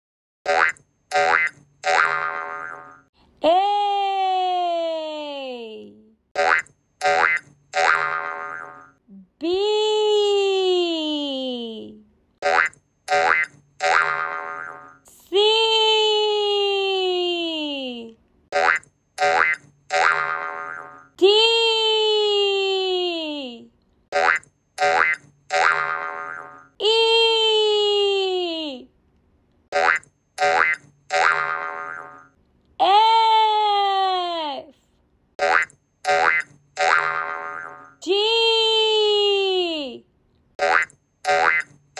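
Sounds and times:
cartoon boing effects: 0:00.5 - 0:03.1, 0:06.4 - 0:09.0, 0:12.4 - 0:15.0, 0:18.6 - 0:21.1, 0:24.2 - 0:26.7, 0:29.8 - 0:32.3, 0:35.4 - 0:38.0, 0:40.6 - 0:41.7.

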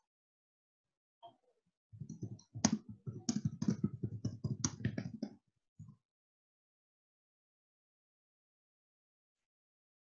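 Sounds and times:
typing on computer keyboard: 0:02.0 - 0:05.3.

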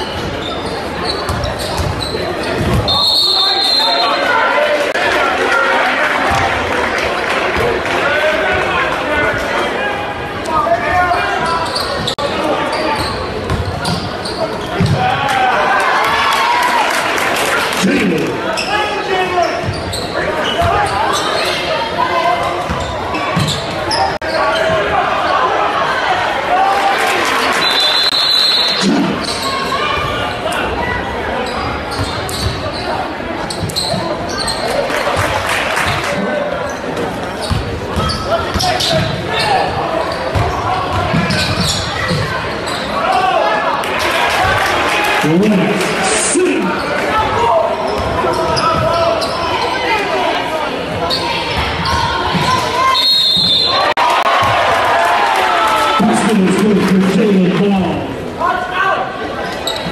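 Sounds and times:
shouting and chatter: 0:00.0 - 0:59.9.

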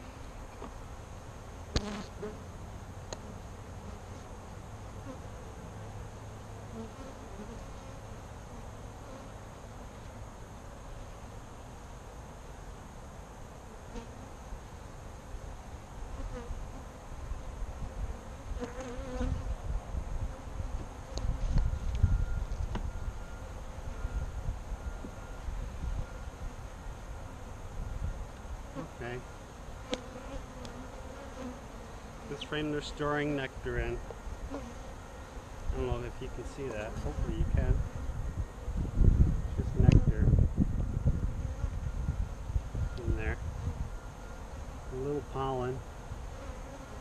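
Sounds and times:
bees buzzing: 0:00.0 - 0:05.7, 0:20.3 - 0:47.0.

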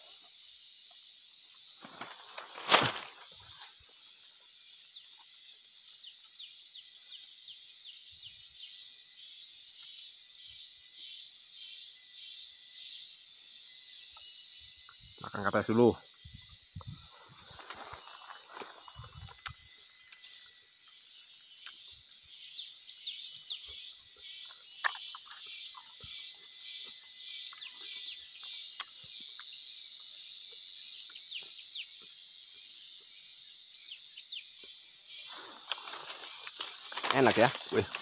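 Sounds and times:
high-pitched insect drone: 0:00.0 - 0:38.0
pulsing insect chirr: 0:00.0 - 0:38.0.

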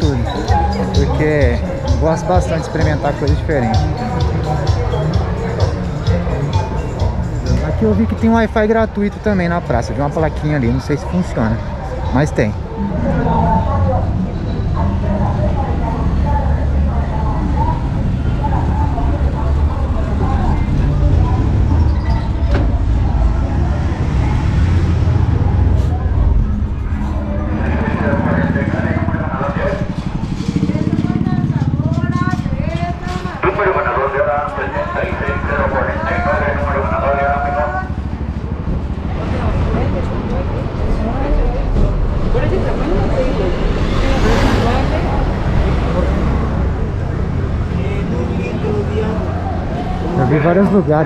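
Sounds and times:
bus engine rumbling: 0:00.0 - 0:51.0
street voices: 0:00.0 - 0:51.0
motorcycle engine running: 0:11.6 - 0:33.4, 0:34.7 - 0:42.0.

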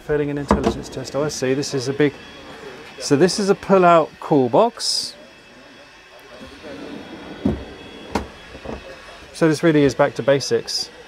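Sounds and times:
murmur of voices: 0:00.0 - 0:11.0
drawer knocks: 0:00.5 - 0:00.8.

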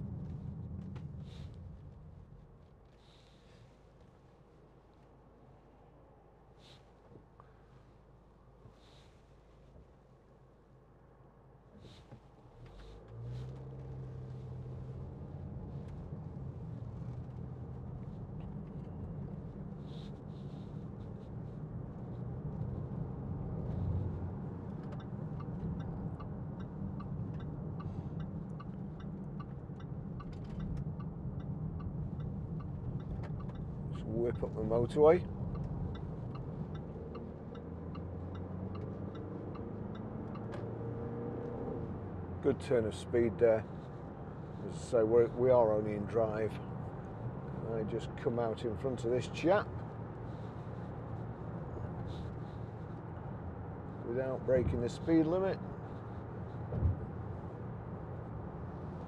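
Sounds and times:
road noise: 0:00.0 - 0:59.0
diesel car engine accelerating: 0:11.8 - 0:59.0.

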